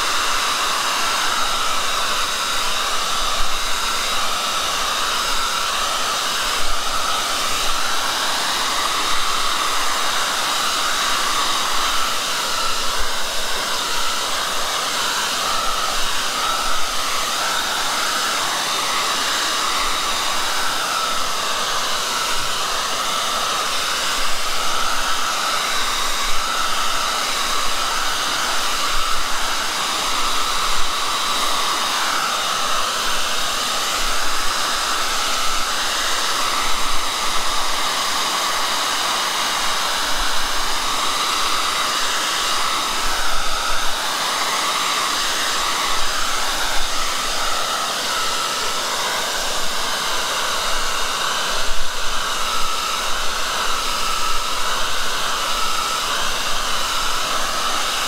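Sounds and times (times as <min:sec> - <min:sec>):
hair dryer running: 0:00.0 - 0:58.0.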